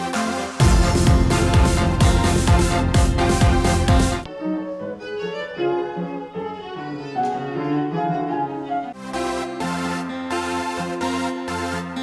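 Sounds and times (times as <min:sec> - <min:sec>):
bowed viola melody: 0:00.6 - 0:12.0.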